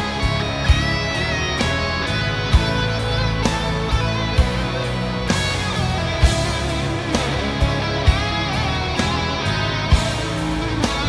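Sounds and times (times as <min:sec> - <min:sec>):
rock music with electric guitar: 0:00.0 - 0:11.0.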